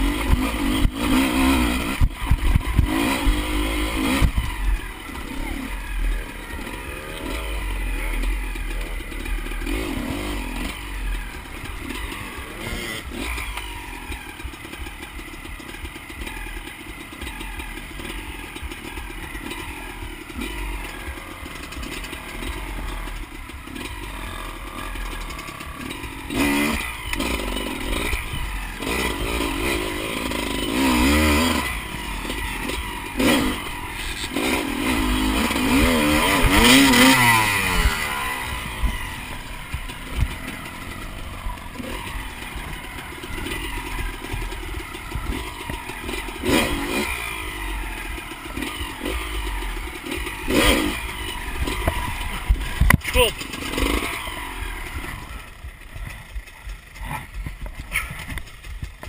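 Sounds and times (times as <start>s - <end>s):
motorbike engine revving: 0.0s - 59.0s
bike knocking over rough ground: 56.0s - 59.0s.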